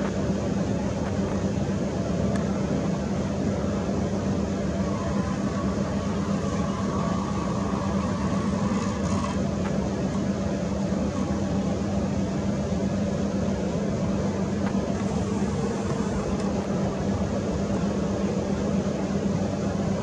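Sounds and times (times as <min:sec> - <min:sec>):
low rumbling hum: 0:00.0 - 0:20.0.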